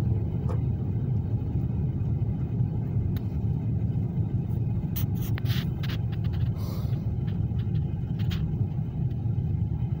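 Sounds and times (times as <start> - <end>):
engine and tyres rumbling: 0.0 - 10.0.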